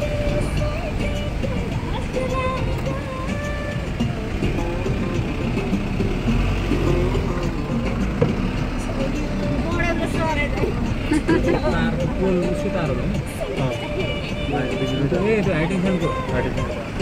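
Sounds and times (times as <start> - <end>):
music with singing voice: 0.0 - 17.0.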